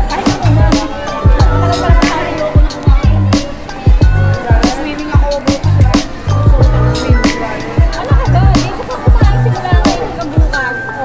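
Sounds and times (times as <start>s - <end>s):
music with drum beat and bass: 0.0s - 10.6s.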